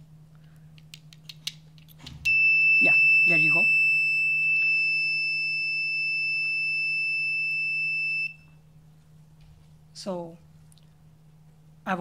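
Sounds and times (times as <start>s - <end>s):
high-pitched buzzer alarm tone: 2.3s - 8.5s.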